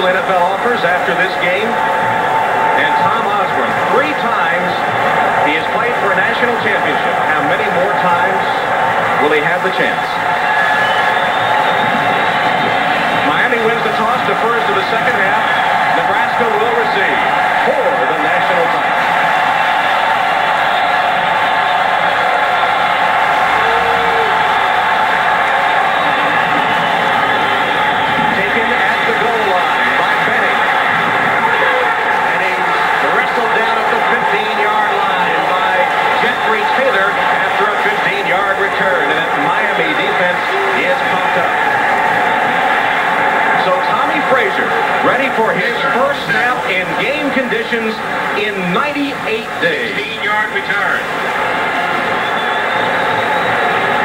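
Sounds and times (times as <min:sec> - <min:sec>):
stadium crowd noise: 0:00.0 - 0:54.0.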